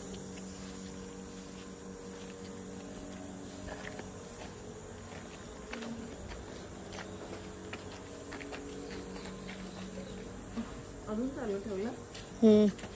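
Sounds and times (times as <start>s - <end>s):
insects buzzing: 0.0s - 12.9s
low steady hum: 0.0s - 12.9s.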